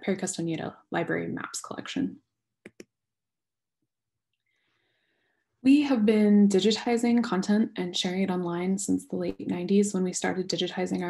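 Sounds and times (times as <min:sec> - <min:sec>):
woman speaking: 0:00.0 - 0:02.2, 0:05.6 - 0:11.0.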